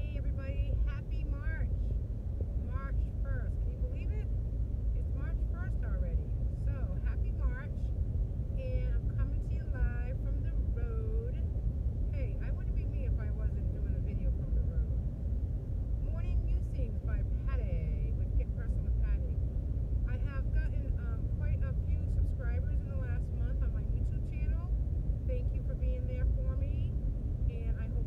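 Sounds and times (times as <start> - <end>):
woman talking: 0.0 - 1.9, 2.6 - 4.3, 5.0 - 7.9, 8.6 - 11.4, 12.1 - 14.9, 16.0 - 19.4, 20.1 - 24.7, 25.3 - 26.9, 27.5 - 28.0
car cabin road rumble: 0.0 - 28.0.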